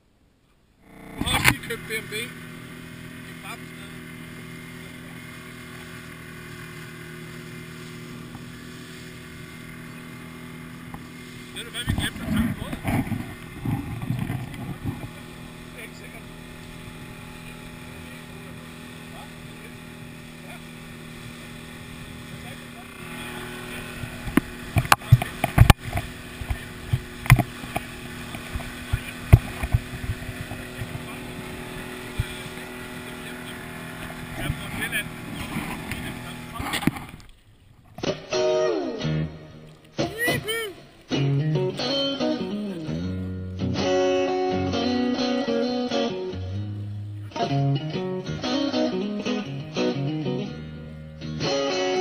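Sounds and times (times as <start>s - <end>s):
outboard motor running: 0.8s - 38.9s.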